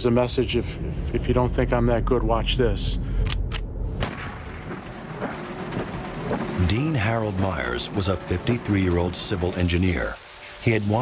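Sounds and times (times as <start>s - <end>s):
echoing rifle shot boom: 3.9s - 6.5s.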